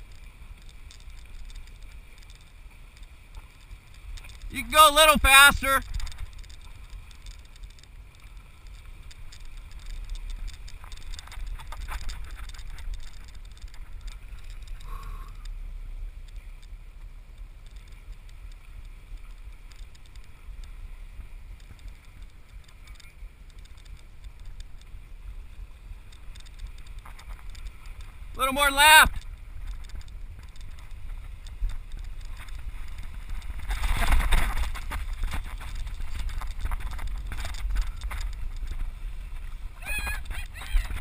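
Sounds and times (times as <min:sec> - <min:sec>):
boat engine rumble: 0:00.0 - 0:41.0
water noise: 0:00.0 - 0:41.0
wind: 0:00.0 - 0:41.0.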